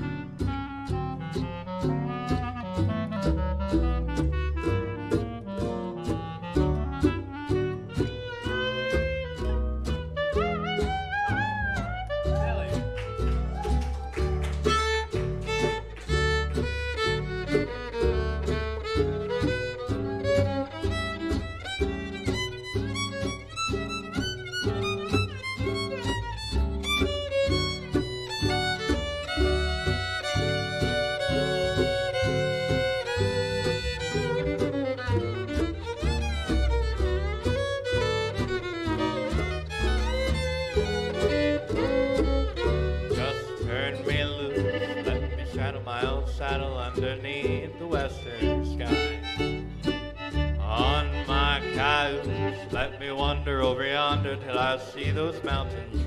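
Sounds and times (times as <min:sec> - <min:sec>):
fiddle: 0:00.0 - 0:56.0
rhythm guitar: 0:00.0 - 0:56.0
upright bass: 0:00.0 - 0:56.0.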